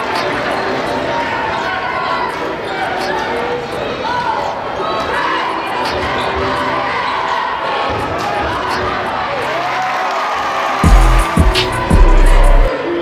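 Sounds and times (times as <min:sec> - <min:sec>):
crowd chatter and shouts: 0:00.0 - 0:13.0.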